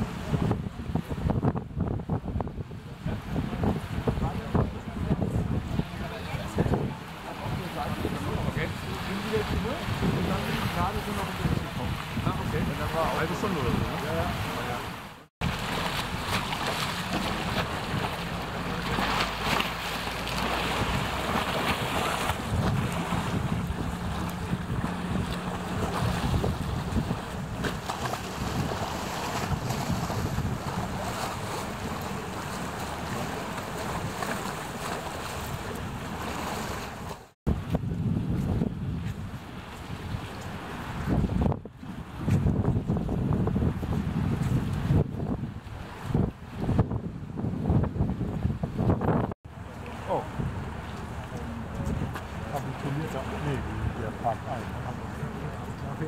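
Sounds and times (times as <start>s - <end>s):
waves splashing against quay: 0.0s - 56.0s
wind buffeting microphone: 0.0s - 56.0s.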